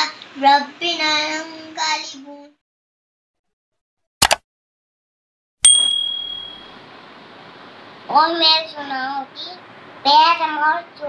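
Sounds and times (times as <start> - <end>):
notification bell ding: 5.6 - 6.7.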